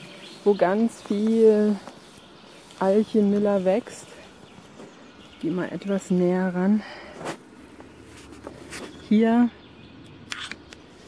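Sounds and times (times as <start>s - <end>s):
footsteps rustling through grass: 0.0s - 9.4s.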